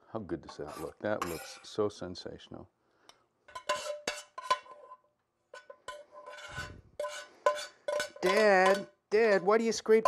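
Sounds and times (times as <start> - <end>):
spoon scraping across pan: 0.4 - 2.0, 3.5 - 8.9
metal spoon clinking on glass dishes: 3.5 - 4.8, 5.5 - 9.0.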